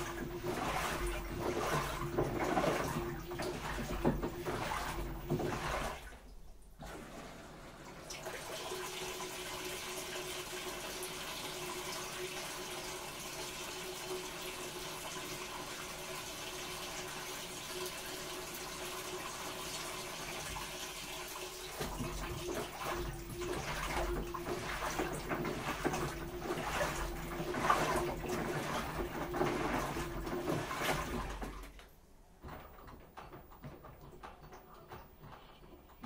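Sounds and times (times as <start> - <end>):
sloshing and knocking: 0.0 - 8.4, 21.5 - 36.0
water rushing into washing machine: 0.0 - 36.0.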